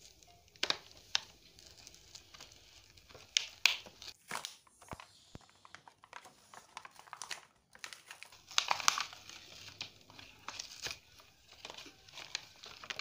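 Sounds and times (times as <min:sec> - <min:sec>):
plastic packaging crinkling: 0:00.0 - 0:13.0.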